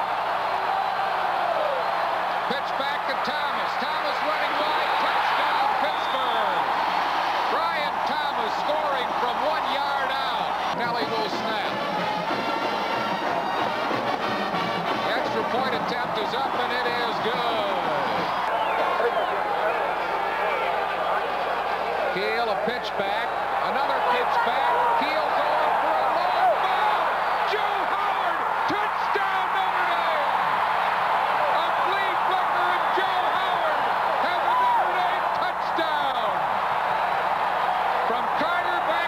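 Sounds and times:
stadium crowd voices: 0.0 - 39.0.

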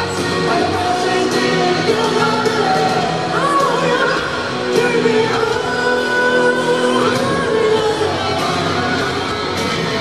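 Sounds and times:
live rock band: 0.0 - 10.0
man singing lead vocals: 0.0 - 10.0.

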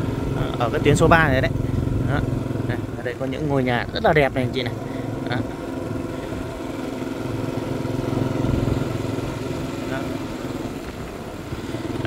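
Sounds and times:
motorbike engine running: 0.0 - 12.0.

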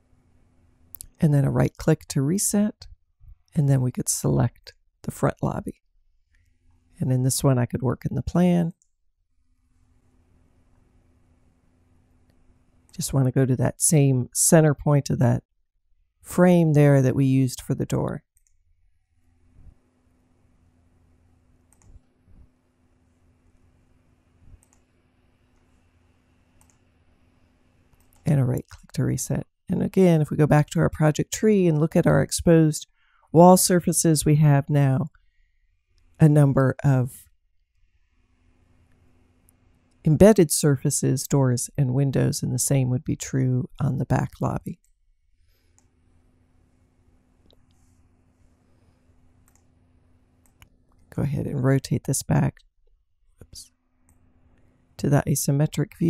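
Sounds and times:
faint computer mouse clicks: 21.7 - 22.0, 24.5 - 24.9, 26.6 - 26.8, 49.4 - 49.7
faint steady hum: 37.8 - 52.5.

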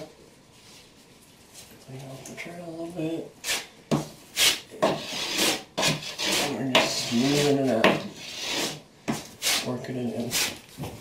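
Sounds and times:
trowel scraping mortar: 4.3 - 10.6.

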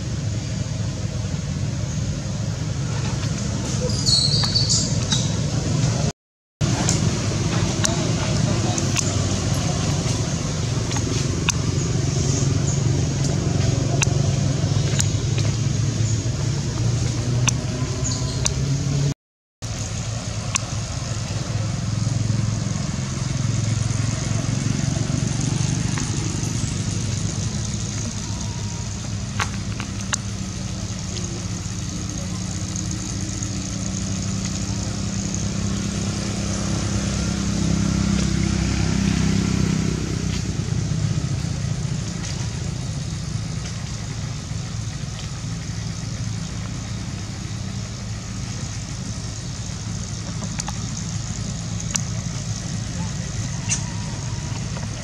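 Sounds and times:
steady high hiss: 0.0 - 55.0
vehicle engine humming: 0.0 - 55.0.

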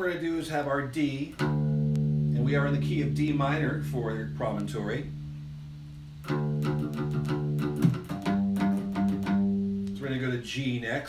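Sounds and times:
dulcimer picking low bass notes: 1.0 - 10.4.

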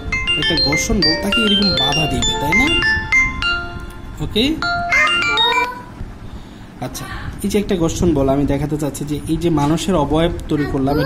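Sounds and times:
bell-like electronic notes: 0.0 - 5.9.

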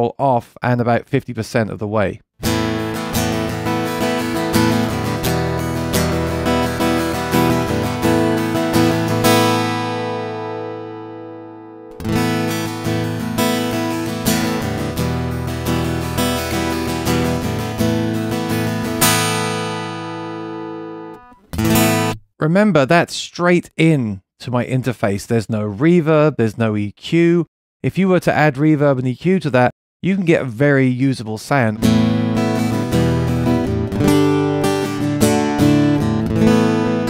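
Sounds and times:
acoustic guitar strumming: 2.4 - 22.2, 31.8 - 37.0.

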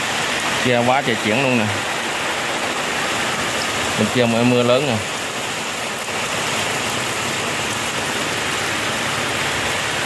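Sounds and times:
heavy rain falling: 0.0 - 10.0.

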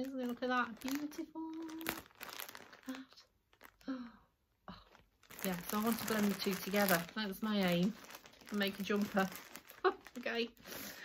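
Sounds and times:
plastic bag crinkling: 0.0 - 4.1, 4.7 - 11.0.

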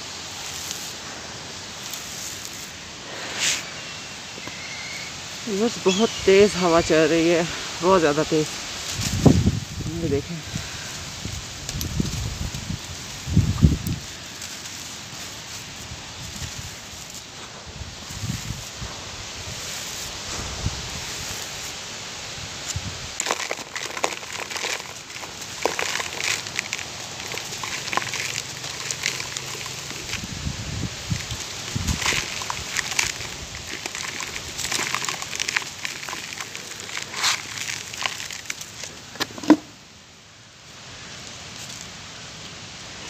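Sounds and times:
grit trickling down: 0.0 - 39.1
hands crushing charcoal lumps: 0.0 - 39.6
wind rumble on microphone: 8.7 - 14.2, 15.8 - 23.2, 29.9 - 33.8.

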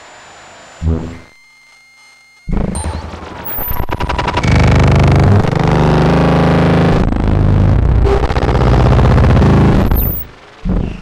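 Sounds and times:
synthesizer buzzing drone: 0.0 - 1.4, 2.5 - 11.0.

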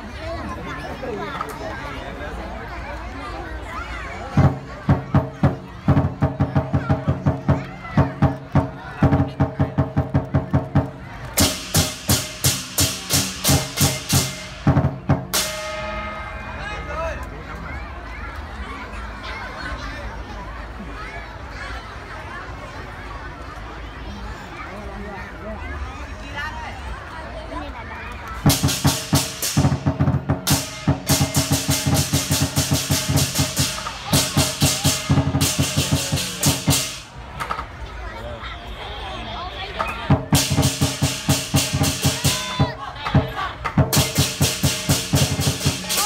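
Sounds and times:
drum cymbals and gong beating: 11.4 - 16.5, 28.5 - 37.1, 40.1 - 42.8, 43.8 - 46.0.

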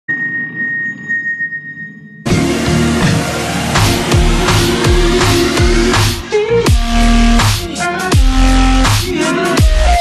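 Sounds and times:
high-pitched electronic tone: 0.1 - 3.2.

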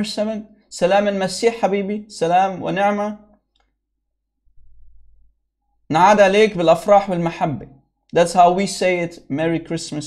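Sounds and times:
man speaking: 0.0 - 3.3, 5.9 - 10.0.

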